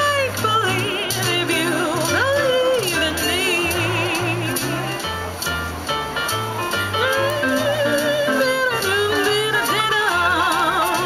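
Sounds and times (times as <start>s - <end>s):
woman singing with vibrato: 0.0s - 5.1s, 7.0s - 11.0s
musical accompaniment with bass line: 0.0s - 11.0s.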